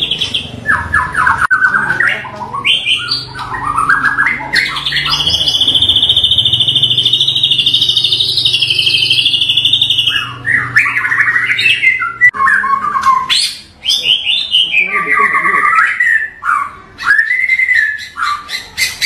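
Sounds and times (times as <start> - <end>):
bird singing with rapid trill: 0.0 - 19.0.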